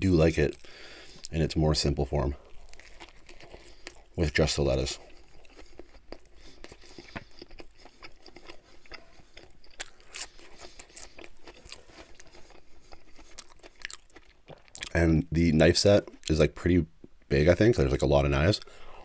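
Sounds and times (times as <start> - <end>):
chewing sandwich: 0.4 - 1.5, 2.3 - 15.0.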